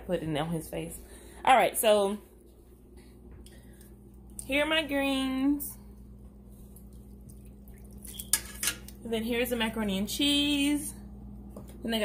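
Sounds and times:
low kitchen noise: 0.0 - 12.0
metal tongs clinking on pot: 8.1 - 8.9.

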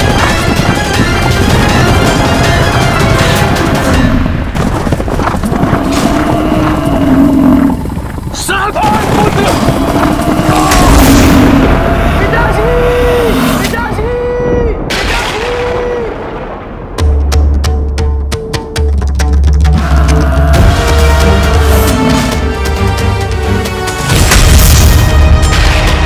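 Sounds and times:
heavy booming rumble: 0.0 - 17.6
deep voice-like creature calls: 5.8 - 13.8, 19.7 - 22.5
higher creature calls: 9.4 - 13.7, 19.8 - 22.4.

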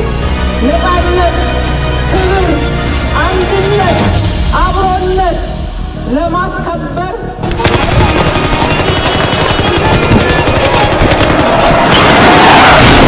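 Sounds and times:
machine-gun fire: 7.4 - 13.0.

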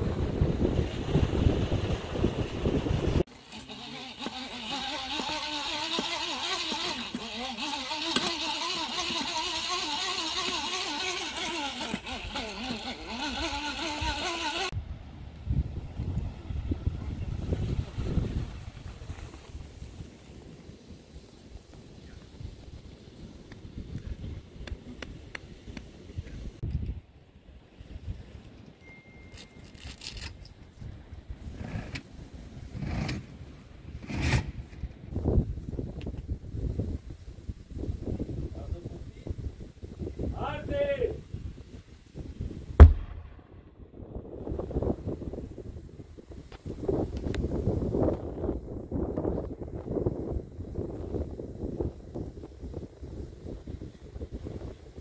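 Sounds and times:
wind noise: 0.0 - 55.0
engine running: 2.3 - 14.7.

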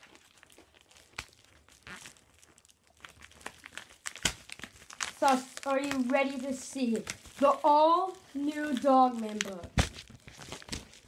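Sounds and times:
paper envelope crinkling: 0.0 - 11.0
sharp paper crackle: 0.0 - 11.0.

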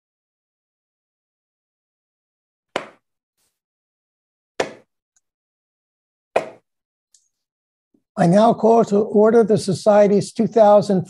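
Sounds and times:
gavel strike: 2.8 - 3.0, 4.6 - 4.9, 6.4 - 6.6.

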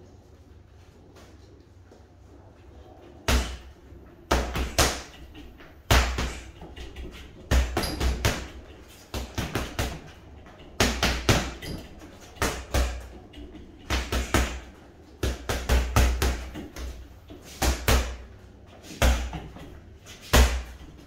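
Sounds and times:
boxing gloves punching bag: 3.3 - 21.0.

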